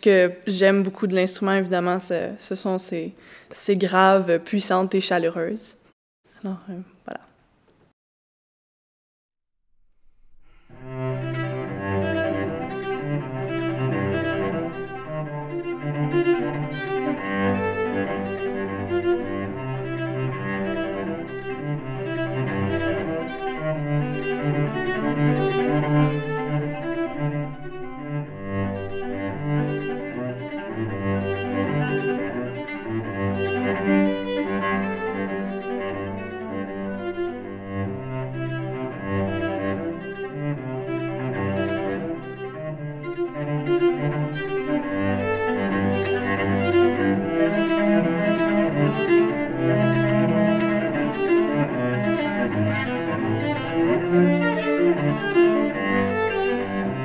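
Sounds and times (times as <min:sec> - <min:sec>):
bowed cello low notes: 0:10.3 - 0:57.0.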